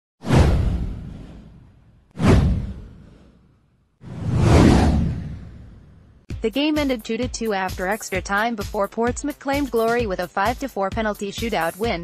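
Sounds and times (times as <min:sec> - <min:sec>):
whoosh with deep low rumble: 0:00.2 - 0:06.3.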